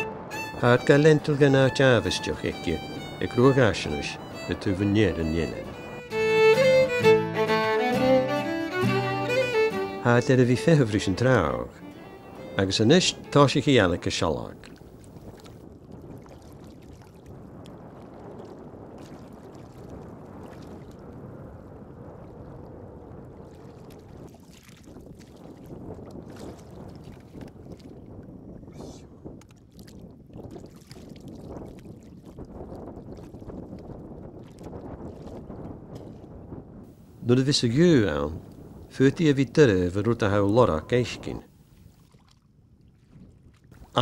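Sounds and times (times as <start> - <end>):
wind on microphone: 0.0 - 9.8, 11.1 - 37.3, 37.9 - 42.2, 42.8 - 44.0
boots wading through water: 14.6 - 21.0, 23.4 - 28.2, 29.4 - 36.4, 41.6 - 44.0.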